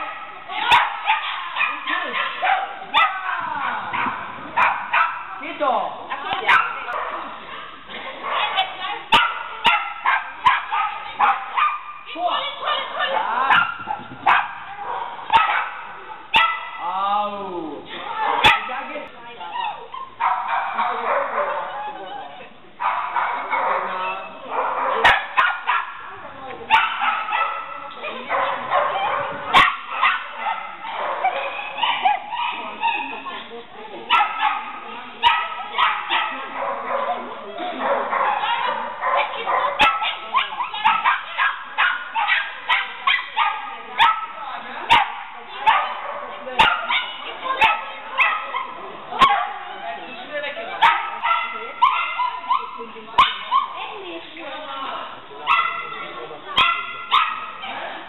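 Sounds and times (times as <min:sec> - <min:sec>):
dogs barking excitedly: 0:00.0 - 0:16.9, 0:17.9 - 0:58.0.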